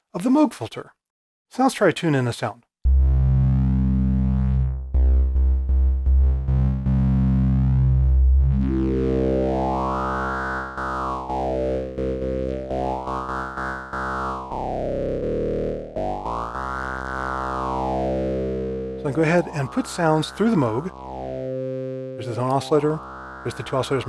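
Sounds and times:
low synthesizer drone: 2.8 - 24.0.

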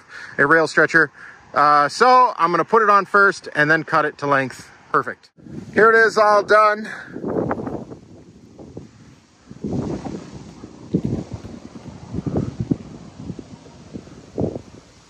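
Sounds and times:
wind buffeting microphone: 5.4 - 15.0.

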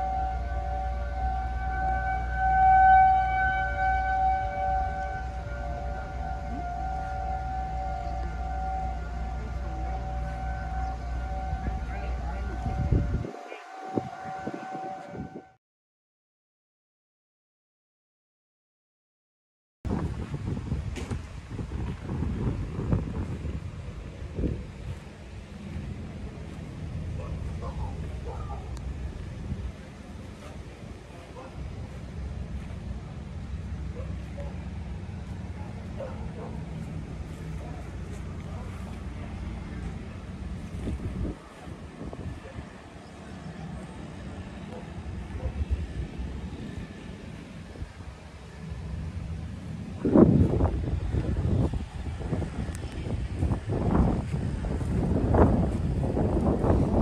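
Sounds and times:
steady high tone: 0.0 - 15.6
wind rumble on microphone: 0.0 - 15.6, 19.9 - 57.0.

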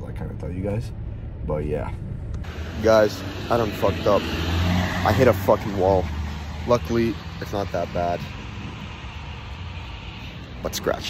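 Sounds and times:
faint outdoor noise: 0.0 - 11.0.

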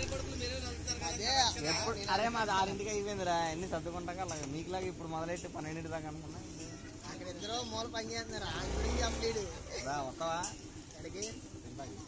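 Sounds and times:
men talking: 0.0 - 12.0
passing vehicle rumble: 8.0 - 12.0.

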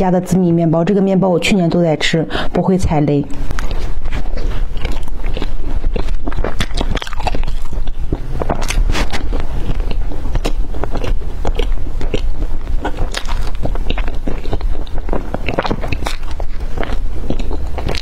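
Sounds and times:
biting and chewing toast: 3.4 - 18.0.

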